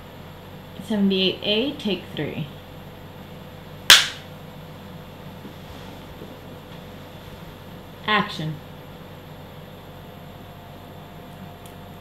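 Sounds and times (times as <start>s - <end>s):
clapperboard snapping shut: 3.9s - 4.2s.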